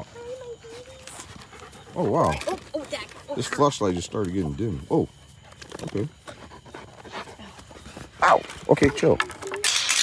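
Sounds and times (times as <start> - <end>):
dog panting: 0.0 - 8.9.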